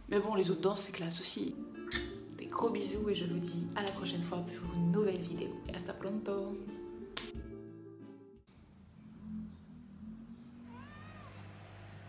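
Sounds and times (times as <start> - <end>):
cat meowing: 10.6 - 11.6.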